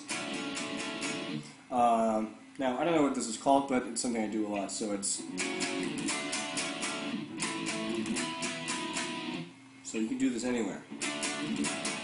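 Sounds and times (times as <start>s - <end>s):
guitar strumming power chord: 0.0s - 1.6s, 4.6s - 9.6s, 10.9s - 12.0s.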